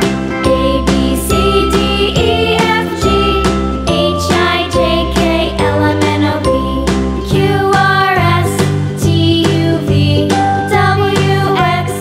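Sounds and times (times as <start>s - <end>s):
upbeat children's music: 0.0s - 12.0s.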